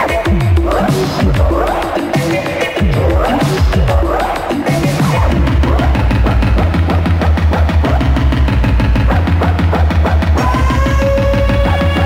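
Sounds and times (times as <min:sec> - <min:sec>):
pulsing bass beat: 0:00.0 - 0:12.0.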